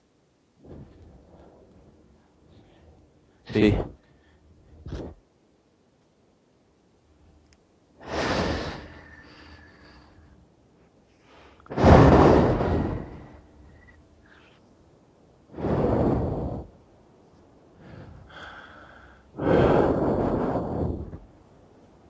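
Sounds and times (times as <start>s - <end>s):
person breathing heavily: 0.6s - 5.2s, 8.0s - 14.6s, 15.5s - 16.8s, 17.6s - 21.3s.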